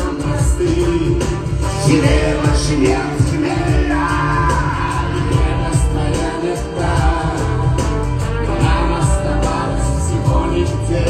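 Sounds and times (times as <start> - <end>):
backing singers: 0.0 - 11.0
live pop-rock song: 0.0 - 11.0
man singing: 0.0 - 11.0.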